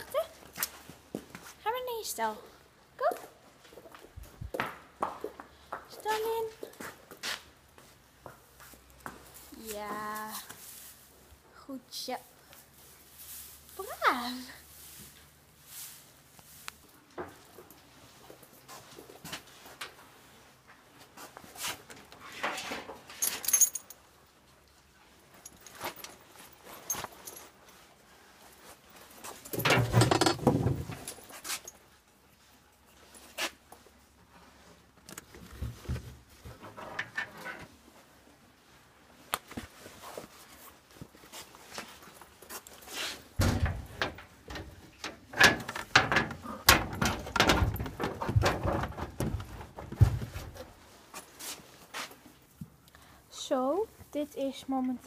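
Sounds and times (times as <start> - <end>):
metal buckles clicking and knocking: 22.6 - 24.0, 25.4 - 27.6, 29.3 - 31.8, 43.4 - 50.8.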